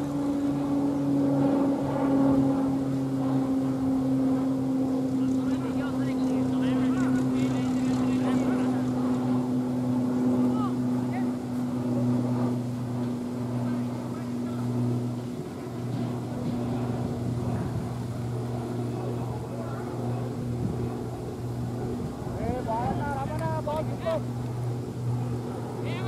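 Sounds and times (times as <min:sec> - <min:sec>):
low droning motor hum: 0:00.0 - 0:26.0
faint distant voices: 0:03.1 - 0:26.0.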